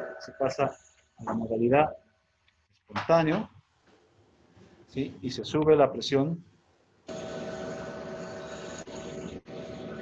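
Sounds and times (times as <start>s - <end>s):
mechanical ventilator hum and hiss: 7.1s - 10.0s.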